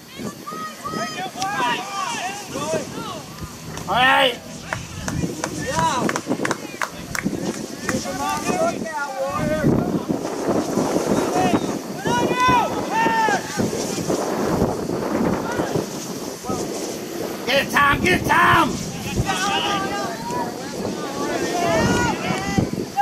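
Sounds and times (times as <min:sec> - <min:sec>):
players shouting and calling: 0:00.0 - 0:14.2, 0:15.2 - 0:16.7, 0:17.4 - 0:23.0
wind noise on microphone: 0:00.0 - 0:23.0.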